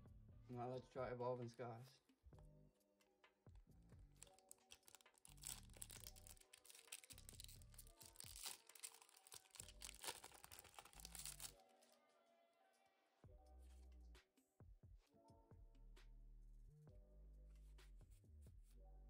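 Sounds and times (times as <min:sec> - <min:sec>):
quiet background music: 0:00.0 - 0:19.0
foil wrapper crinkling and tearing: 0:04.2 - 0:11.6.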